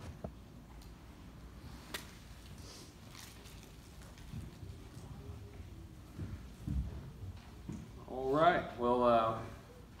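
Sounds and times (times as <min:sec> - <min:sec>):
soft footsteps: 0:01.6 - 0:08.2.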